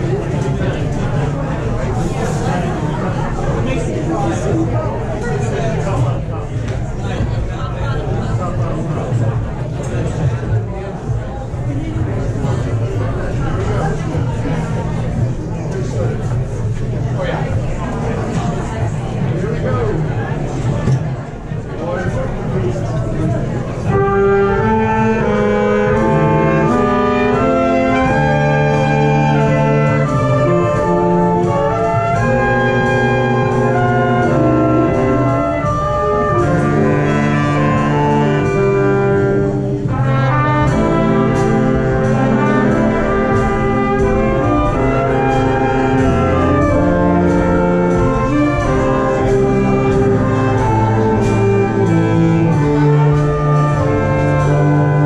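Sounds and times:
big band playing: 0.0s - 55.0s.

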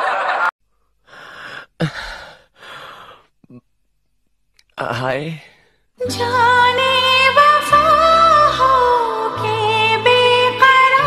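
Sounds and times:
person breathing: 0.7s - 3.6s, 5.4s - 6.0s
person speaking: 4.6s - 5.6s.

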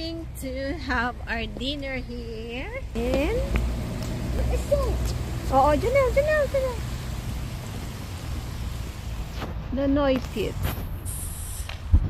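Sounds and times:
even outdoor hiss: 0.0s - 12.0s
low rumble: 2.8s - 11.2s.

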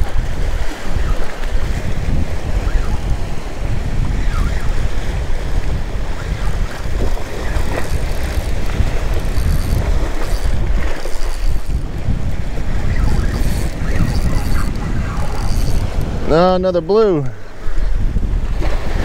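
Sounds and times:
waves washing against rocks: 0.0s - 19.0s
wind buffeting microphone: 0.0s - 19.0s.

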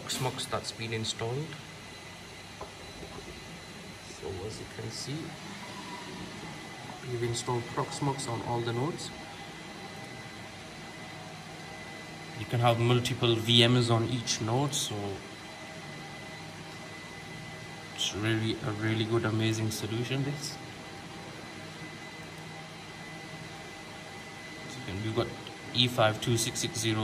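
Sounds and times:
cooling fans whirring: 0.0s - 27.0s
high-pitched whine: 0.0s - 27.0s.

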